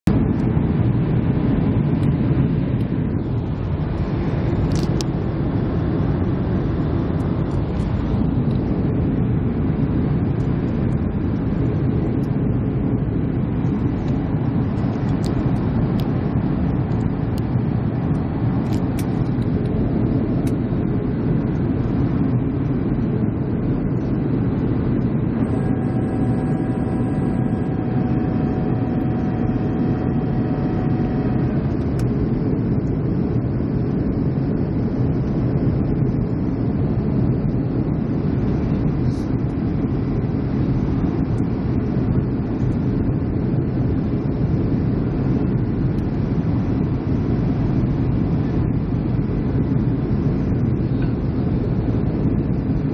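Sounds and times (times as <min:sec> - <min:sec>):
faint steady whine: 0:00.0 - 0:52.9
jet engine and airflow rumble: 0:00.0 - 0:52.9.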